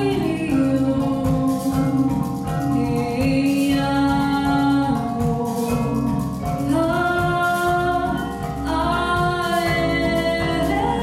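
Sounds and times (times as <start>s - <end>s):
mallet percussion ensemble: 0.0s - 11.0s.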